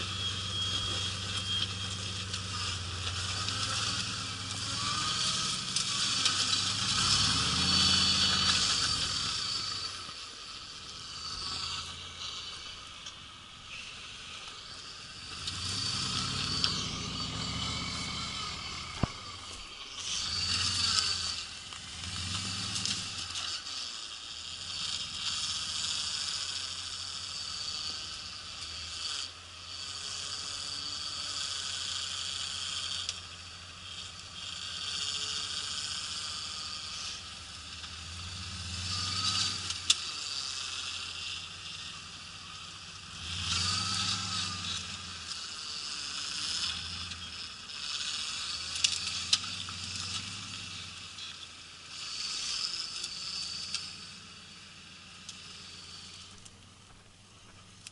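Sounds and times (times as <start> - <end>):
buggy engine revving: 0.0 - 57.9
steady hiss: 0.0 - 57.9.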